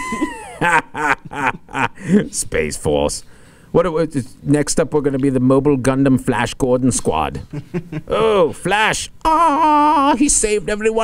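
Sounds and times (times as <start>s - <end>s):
man laughing high-pitched: 0.0s - 2.3s.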